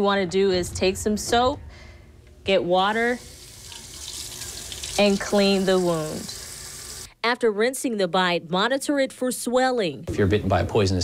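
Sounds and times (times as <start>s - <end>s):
tap water running into metal sink: 3.2s - 7.1s.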